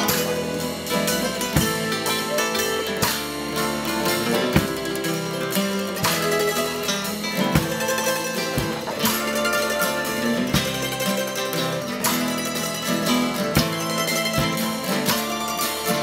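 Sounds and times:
acoustic string band playing: 0.0 - 16.0
drum beat: 0.0 - 16.0.

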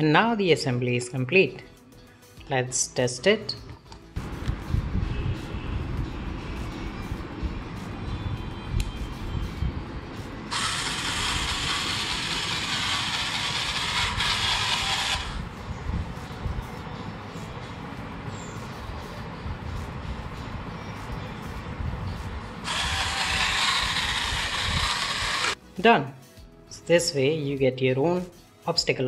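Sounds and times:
loud hissing motor noise: 10.4 - 15.5, 22.6 - 25.6
drive motors whirring: 10.5 - 15.4, 22.6 - 25.6.

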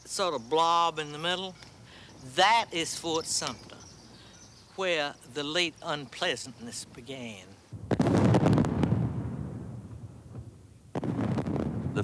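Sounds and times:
field guns booming: 7.7 - 12.0.

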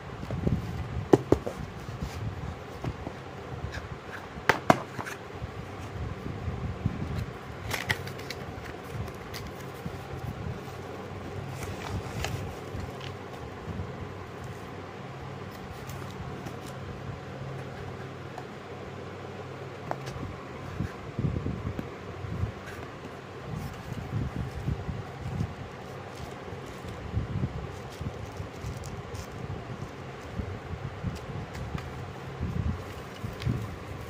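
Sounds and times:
steady low hum: 0.0 - 34.0
box and plastic handling crinkles: 7.6 - 10.8, 27.7 - 29.4.

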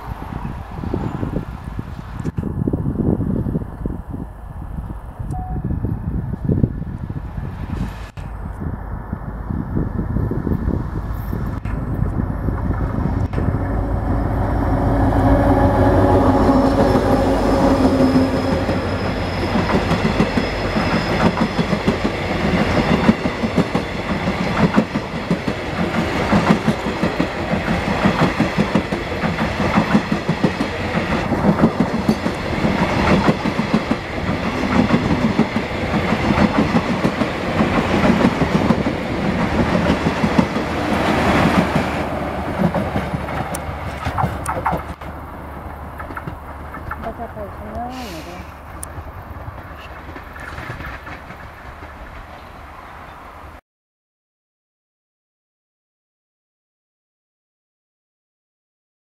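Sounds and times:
locomotive engine hum: 6.7 - 53.5
train wheels clacking over rail joints: 17.6 - 47.3, 48.7 - 52.4.

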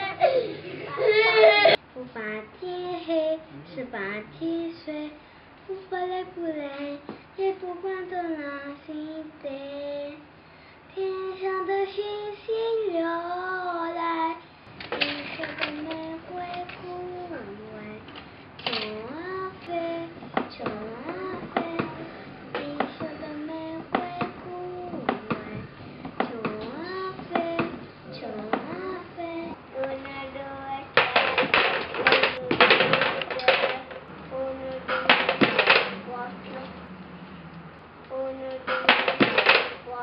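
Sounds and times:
girl singing unaccompanied: 0.9 - 37.0, 38.0 - 40.0
loud rapid clattering: 31.0 - 34.0.

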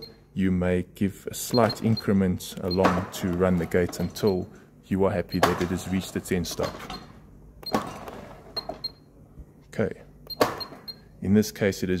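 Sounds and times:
short high keypad beeps: 0.0 - 0.2, 1.5 - 3.0, 10.3 - 11.1.

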